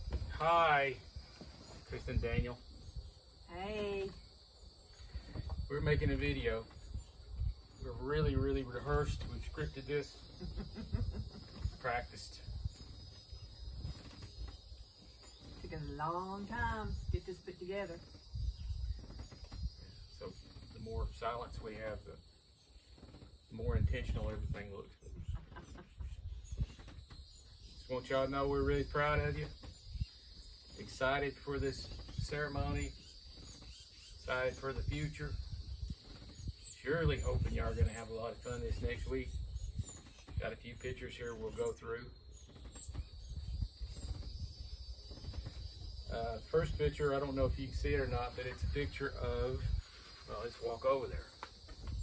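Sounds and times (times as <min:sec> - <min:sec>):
insects chorus: 0:00.0 - 0:52.0.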